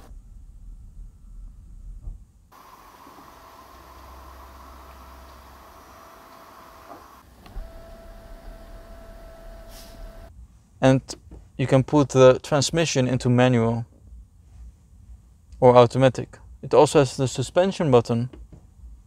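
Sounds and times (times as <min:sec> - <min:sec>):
electric motor whine: 0:02.6 - 0:10.3.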